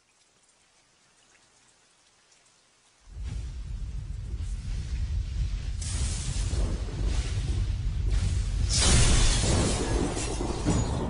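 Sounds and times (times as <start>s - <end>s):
faint hiss with soft ticks: 0.0s - 6.4s.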